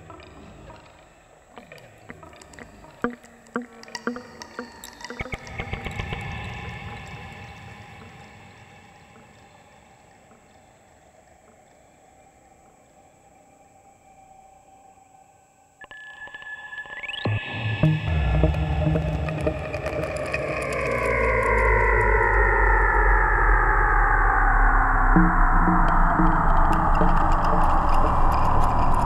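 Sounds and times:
modular synthesizer music: 0.0 - 14.3, 15.8 - 29.0
rising synth sweep: 17.2 - 29.0
deep bass: 17.3 - 29.0.

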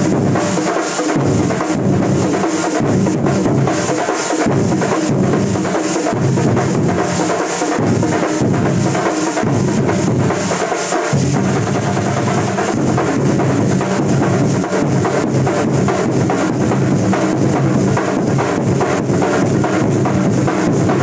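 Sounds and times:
drums beaten in fast rhythm: 0.0 - 21.0.

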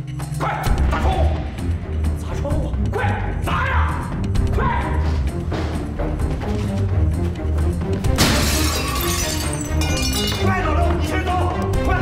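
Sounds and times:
tense background music: 0.0 - 12.0
glass window shattering: 8.2 - 10.5
glass pieces tinkling: 8.4 - 10.5.

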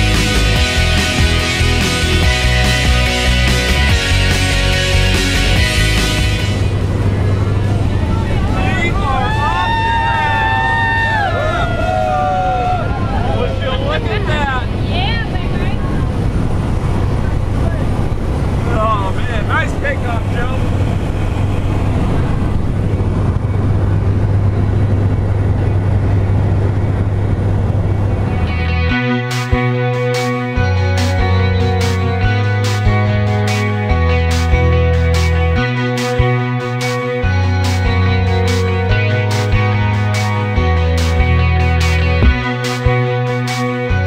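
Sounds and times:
light aircraft engine drone: 6.4 - 28.8.

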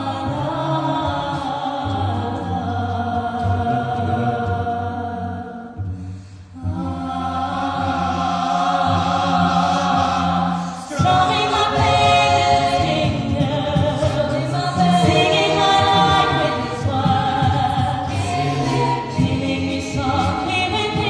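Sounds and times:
a cappella group singing: 0.0 - 21.0.

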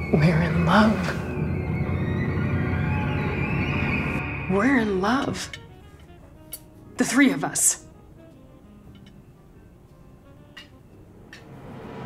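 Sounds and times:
droning music score: 0.0 - 12.0.

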